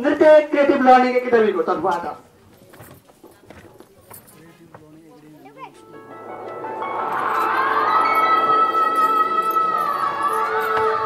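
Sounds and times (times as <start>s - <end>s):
footsteps on stage platform: 2.4s - 6.6s.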